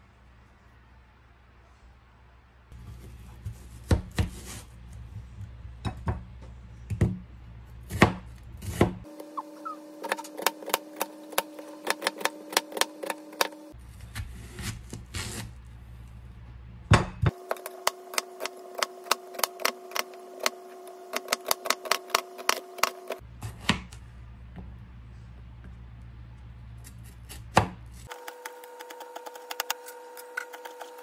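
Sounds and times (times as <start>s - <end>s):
knife chopping on cutting board: 10.0s - 13.6s.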